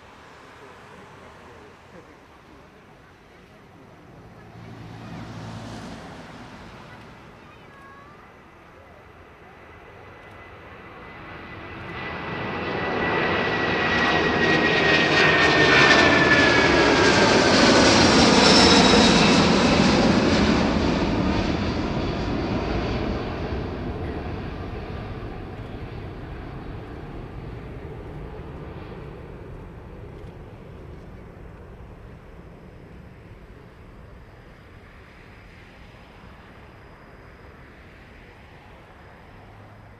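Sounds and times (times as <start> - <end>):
jet airliner passing overhead: 0.0 - 39.9.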